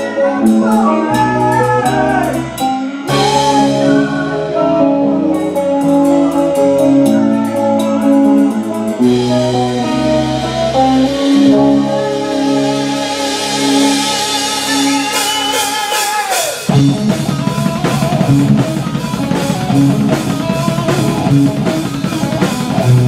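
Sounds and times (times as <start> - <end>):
drum kit playing: 0.0 - 23.0
guitar chords: 0.0 - 23.0.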